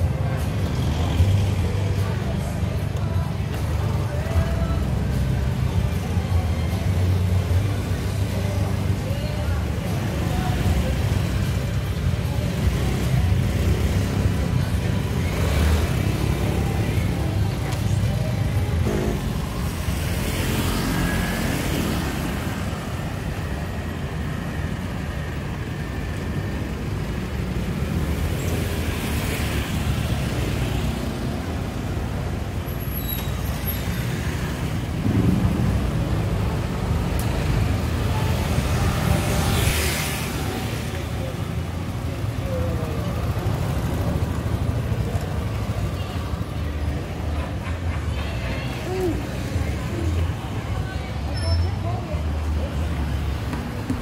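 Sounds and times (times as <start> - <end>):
people's voices: 0.0 - 54.0
music: 0.4 - 11.6
motor scooters passing: 5.4 - 54.0.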